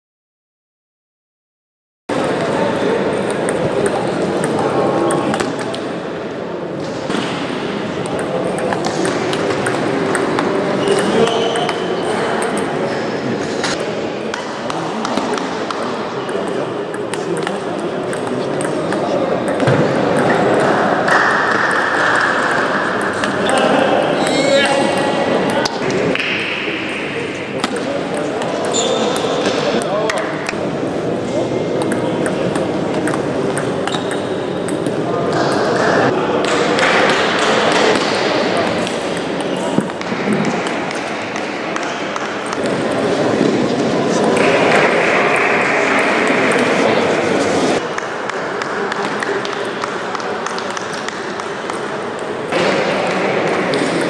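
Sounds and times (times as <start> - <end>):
voices chattering: 2.1 - 54.0.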